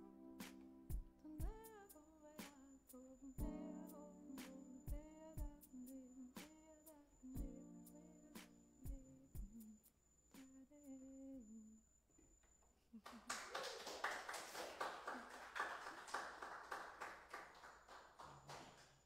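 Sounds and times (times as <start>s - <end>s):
audience applause: 13.0s - 19.0s.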